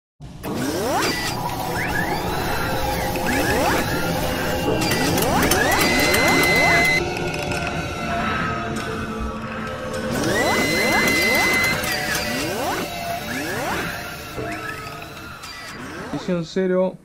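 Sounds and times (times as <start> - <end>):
mechanical clanking: 0.4 - 8.0, 9.6 - 16.2.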